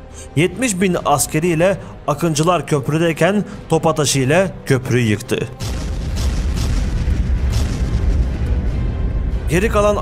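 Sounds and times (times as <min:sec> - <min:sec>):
background music: 0:00.0 - 0:10.0
deep explosion rumble: 0:05.6 - 0:10.0.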